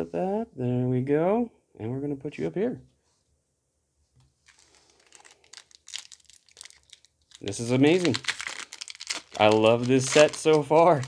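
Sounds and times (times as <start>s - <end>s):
foil wrapper crinkling: 4.4s - 11.0s
foil wrapper tearing: 4.4s - 11.0s.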